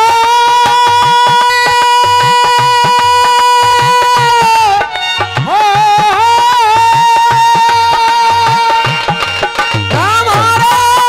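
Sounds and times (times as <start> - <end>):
man singing a long high note: 0.0 - 9.2, 9.9 - 11.0
hand drum beat: 0.0 - 11.0.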